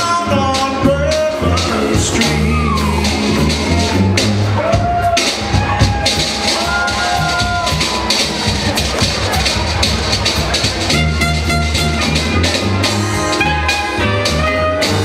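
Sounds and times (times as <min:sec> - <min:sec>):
jazz band playing: 0:00.0 - 0:15.0
sousaphone bass line: 0:00.0 - 0:15.0.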